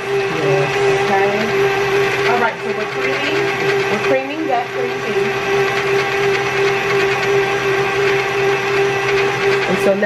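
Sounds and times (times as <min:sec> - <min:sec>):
electric stand mixer running: 0:00.0 - 0:10.0.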